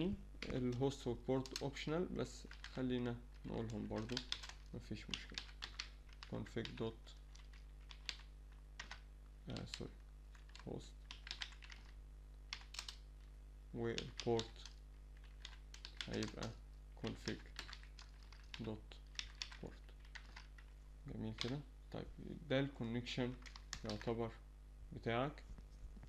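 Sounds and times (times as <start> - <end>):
computer keyboard typing: 1.4 - 1.8, 2.4 - 13.1, 13.9 - 20.7, 21.3 - 21.6, 23.3 - 24.2.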